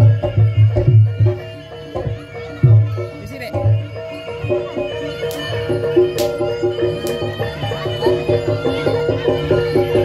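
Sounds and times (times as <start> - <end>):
pulsing drum beat: 0.0 - 10.0.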